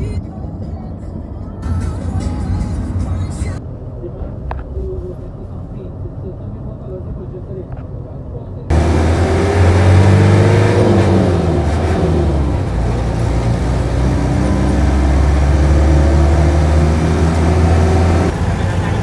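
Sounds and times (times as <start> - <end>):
bus engine from inside cabin: 0.0 - 19.0.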